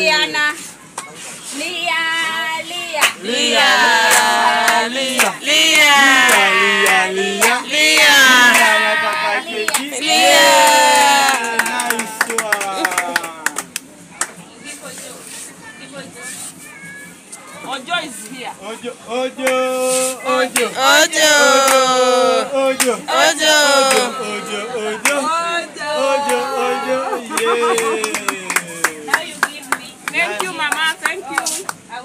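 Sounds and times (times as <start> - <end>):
murmur of party chatter: 0.0 - 32.0.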